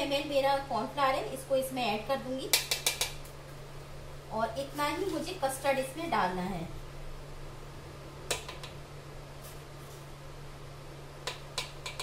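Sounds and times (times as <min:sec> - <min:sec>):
steady low hum: 0:00.0 - 0:12.0
spoon clicking on steel plate: 0:11.3 - 0:12.0.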